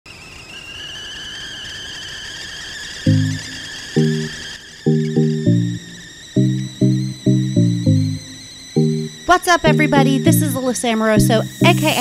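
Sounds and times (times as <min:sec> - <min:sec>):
faint low crackle: 0:03.1 - 0:09.3
high-pitched whine: 0:03.1 - 0:12.0.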